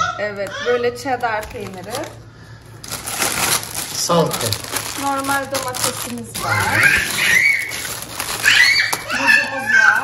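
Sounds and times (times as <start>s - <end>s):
cellophane packaging crinkling: 1.0s - 10.0s
plastic bag rustling: 1.0s - 10.0s.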